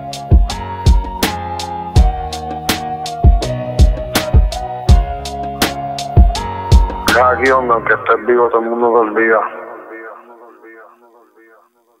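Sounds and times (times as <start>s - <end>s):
thin filtered voice echoing: 7.1s - 12.0s.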